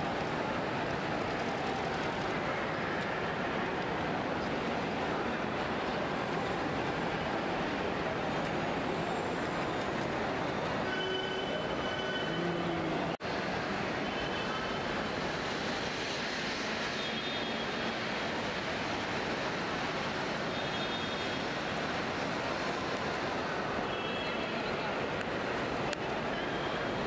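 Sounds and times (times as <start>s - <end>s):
traffic: 0.0s - 27.0s.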